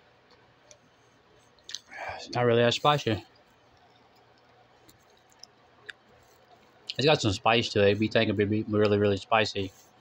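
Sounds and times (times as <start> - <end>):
wet mouth clicks chewing: 3.4 - 6.1.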